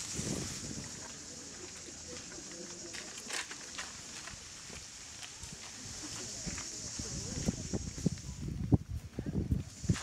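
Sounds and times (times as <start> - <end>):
cicadas buzzing: 0.0 - 8.7, 9.6 - 10.0
murmur of crowd voices: 0.0 - 10.0.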